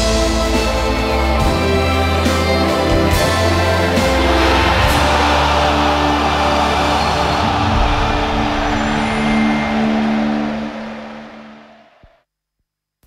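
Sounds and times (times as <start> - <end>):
dense rushing swell: 3.6 - 11.9.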